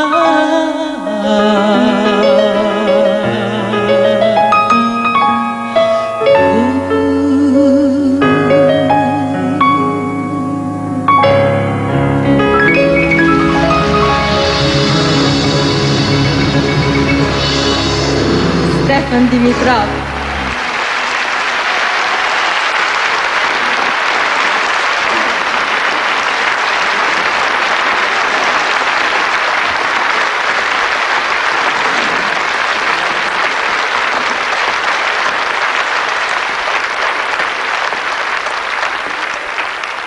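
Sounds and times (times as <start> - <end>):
band final note: 12.3 - 20.7
audience applauding: 12.6 - 40.0.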